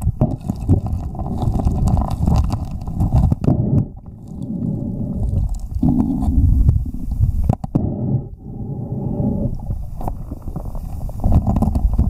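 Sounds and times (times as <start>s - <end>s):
muffled underwater water churning: 0.0s - 12.0s.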